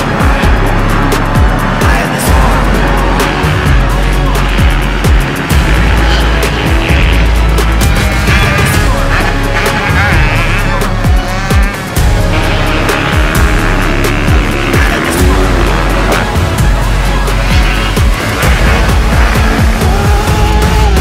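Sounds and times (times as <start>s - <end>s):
backing music: 0.0s - 21.0s
dirt bike engines revving: 0.0s - 21.0s.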